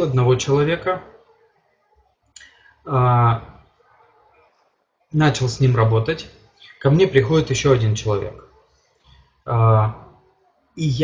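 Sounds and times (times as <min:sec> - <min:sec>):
man speaking hesitantly: 0:00.0 - 0:01.1, 0:02.4 - 0:03.6, 0:05.2 - 0:08.4, 0:09.5 - 0:10.1, 0:10.8 - 0:11.0.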